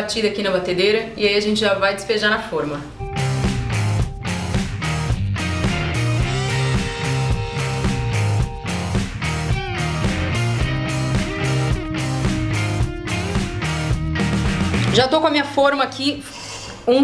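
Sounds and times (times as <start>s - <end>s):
background music with steady beat: 3.0s - 15.6s.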